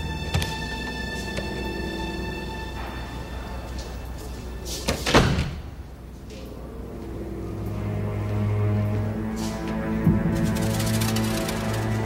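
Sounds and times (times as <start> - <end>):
tense film score: 0.0 - 12.0
heavy door slamming: 4.9 - 5.8.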